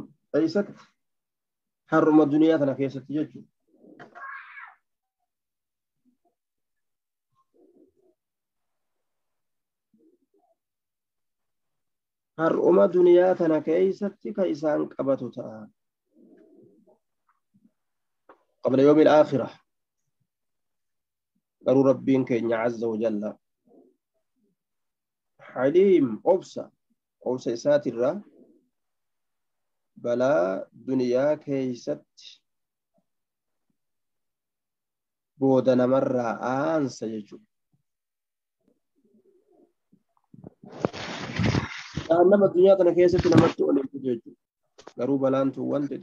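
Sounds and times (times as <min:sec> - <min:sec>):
faint dove cooing: 0:03.6 - 0:04.8, 0:07.3 - 0:08.4, 0:09.9 - 0:10.6, 0:16.0 - 0:17.1, 0:23.6 - 0:24.1, 0:28.2 - 0:28.8, 0:38.6 - 0:39.8.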